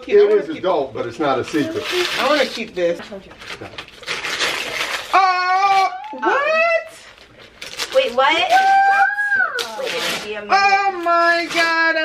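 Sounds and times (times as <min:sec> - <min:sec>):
paper tearing and rustling: 0:01.4 - 0:12.0.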